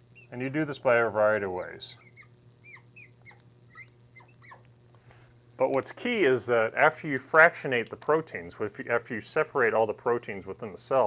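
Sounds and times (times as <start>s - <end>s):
marker squeaking on glass: 0.0s - 0.5s, 1.3s - 4.6s.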